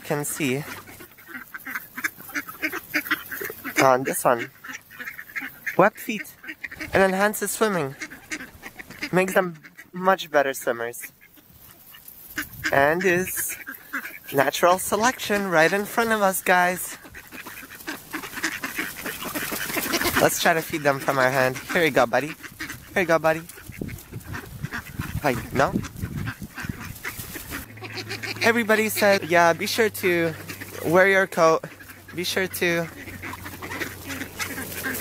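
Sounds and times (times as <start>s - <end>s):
ducks quacking: 0.0s - 35.0s.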